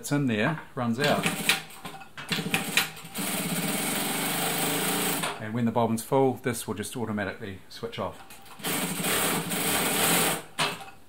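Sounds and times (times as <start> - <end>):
sewing machine running: 1.0 - 5.4, 8.4 - 10.8.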